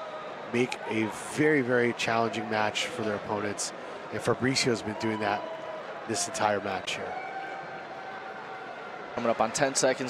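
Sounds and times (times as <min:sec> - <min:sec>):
busy hall background noise: 0:00.0 - 0:10.0.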